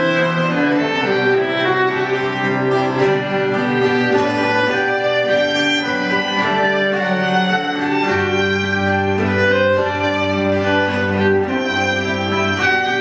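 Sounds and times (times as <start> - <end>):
bowed cello: 0.0 - 13.0
fiddle melody: 0.0 - 13.0.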